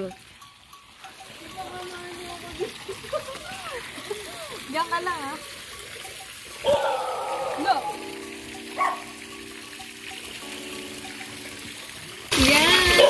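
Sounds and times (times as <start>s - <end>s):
fountain water splashing: 0.0s - 13.0s
held musical tone: 3.3s - 13.0s.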